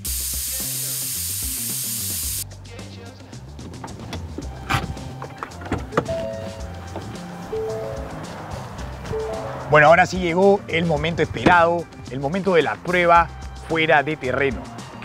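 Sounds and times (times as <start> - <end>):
air hissing out of tyre valve: 0.0 - 2.4
background music: 0.1 - 15.0.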